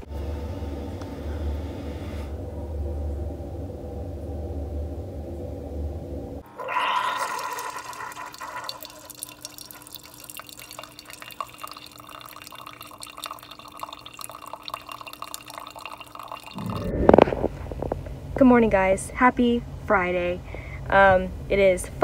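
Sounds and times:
coffee machine humming: 0:00.0 - 0:18.0
coffee pouring into a mug: 0:06.5 - 0:16.8.

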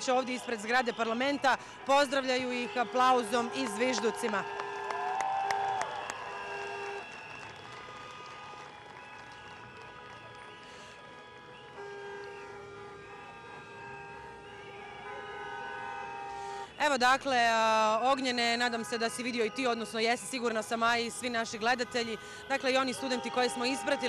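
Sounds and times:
people clapping: 0:00.1 - 0:12.4
long horn blasts: 0:00.8 - 0:05.0, 0:06.1 - 0:07.1, 0:07.7 - 0:16.8, 0:18.3 - 0:24.0
whistles: 0:05.7 - 0:08.3, 0:08.9 - 0:12.6.

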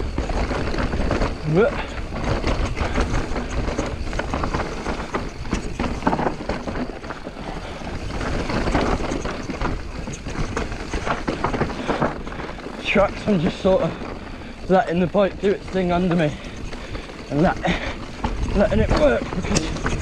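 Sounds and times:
mountain bike rattling and clattering: 0:00.0 - 0:20.0
rumble of tyres on dirt: 0:00.0 - 0:20.0.

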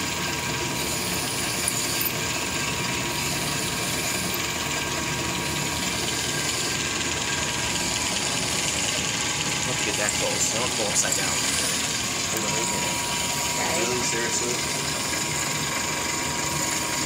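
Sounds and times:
flowing coolant: 0:00.0 - 0:17.0
lathe drilling metal: 0:00.0 - 0:17.0
thin steady whine: 0:00.0 - 0:17.0.

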